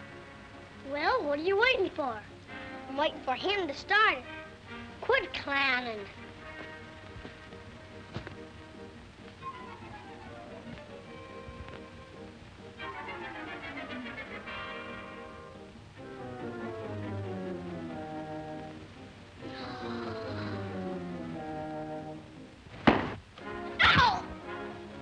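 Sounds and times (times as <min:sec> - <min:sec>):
comic orchestral music: 0:00.0 - 0:22.6, 0:23.4 - 0:25.0
sharp thuds: 0:22.7 - 0:24.2.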